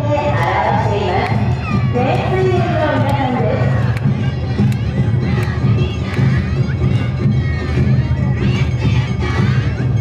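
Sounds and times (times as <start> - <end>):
crowd: 0.0 - 10.0
festival drums beating: 0.0 - 10.0
many voices shouting: 0.3 - 6.7.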